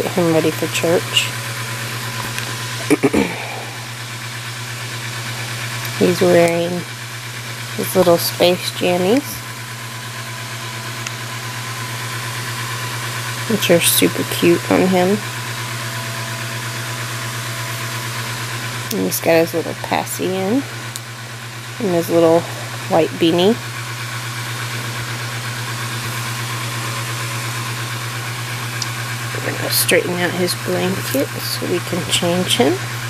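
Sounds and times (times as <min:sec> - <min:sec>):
speech: 0:00.0 - 0:01.3, 0:02.9 - 0:03.4, 0:05.9 - 0:06.9, 0:07.8 - 0:09.4, 0:13.5 - 0:15.2, 0:18.9 - 0:20.7, 0:21.8 - 0:23.6, 0:29.4 - 0:32.8
motor or fan humming: 0:00.0 - 0:33.0.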